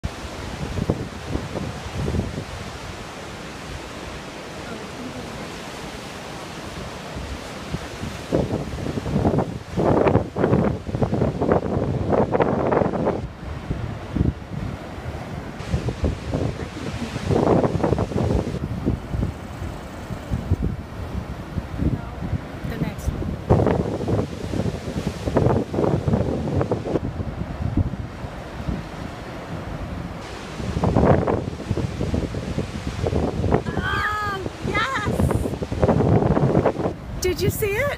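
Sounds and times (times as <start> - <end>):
ocean surf washing over rocks: 0.0 - 37.9
wind buffeting microphone: 0.0 - 37.9.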